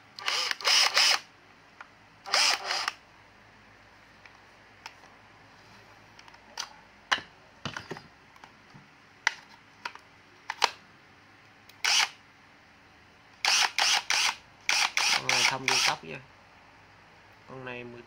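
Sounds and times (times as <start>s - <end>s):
cordless drill bursts: 0.2s - 1.3s, 2.3s - 3.0s, 11.8s - 12.2s, 13.4s - 16.0s.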